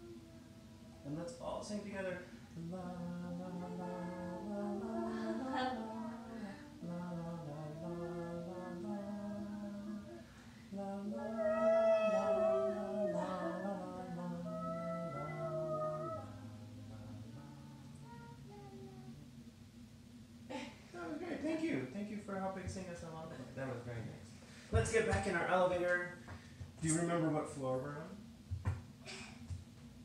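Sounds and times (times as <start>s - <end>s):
voices singing unaccompanied lullaby: 0.0s - 20.0s.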